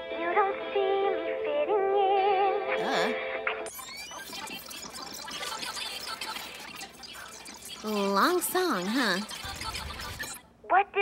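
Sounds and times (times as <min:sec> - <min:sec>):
sped-up playback chatter: 0:02.8 - 0:11.0.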